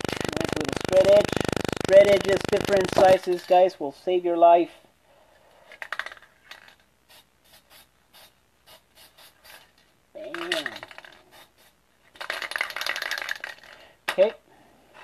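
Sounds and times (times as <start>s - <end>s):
spray can being shaken: 5.9s - 13.8s.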